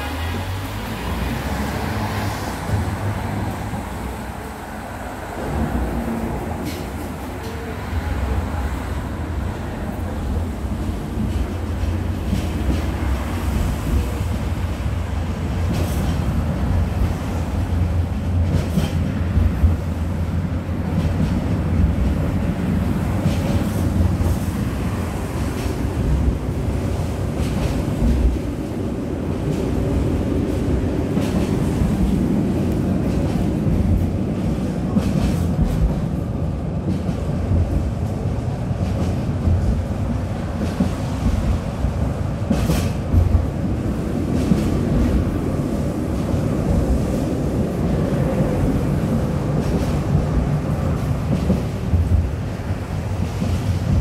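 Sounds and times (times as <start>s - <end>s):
tram wheels and motors rumbling: 0.0s - 54.0s
rail clicks and knocks: 1.6s - 54.0s.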